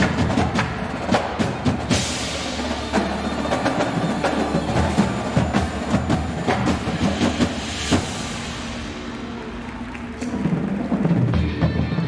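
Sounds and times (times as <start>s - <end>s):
marching drums: 0.0s - 12.0s.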